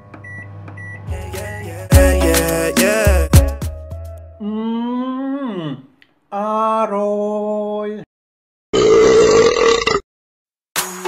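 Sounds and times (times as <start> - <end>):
person burping loudly: 4.4 - 6.0, 8.7 - 10.1.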